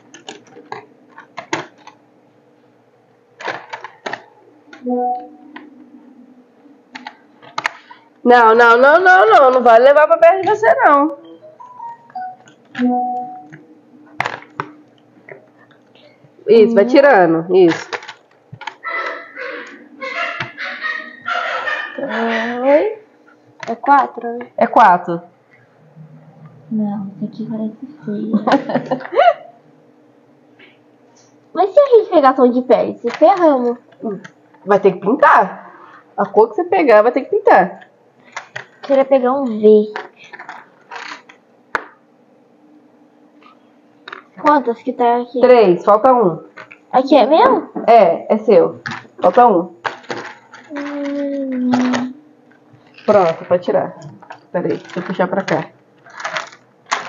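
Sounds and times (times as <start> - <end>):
pencils clicking and rattling: 0.0 - 2.0, 3.4 - 4.3, 17.6 - 20.6, 33.0 - 34.4, 39.8 - 41.4, 48.8 - 52.1, 52.9 - 57.0
wooden pencils rattling: 49.8 - 52.1, 54.2 - 57.0
person humming: 50.7 - 52.2.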